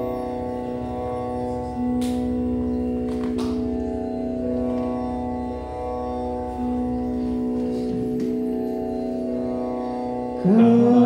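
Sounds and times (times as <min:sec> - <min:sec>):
sustained organ-like chord: 0:00.0 - 0:11.0.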